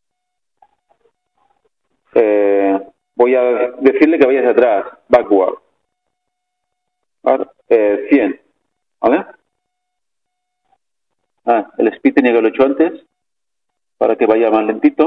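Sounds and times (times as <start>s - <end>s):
man speaking: 2.1s - 5.7s, 7.2s - 9.4s, 11.4s - 13.1s, 14.0s - 15.0s.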